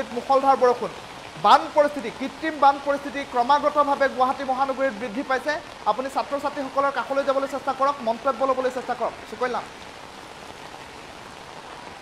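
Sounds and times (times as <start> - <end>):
steady rain falling: 0.0 - 12.0.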